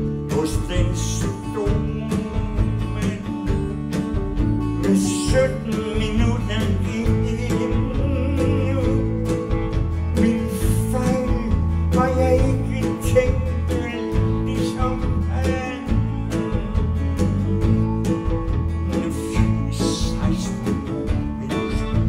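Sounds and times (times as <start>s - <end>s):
live folk-rock band playing: 0.0s - 22.0s.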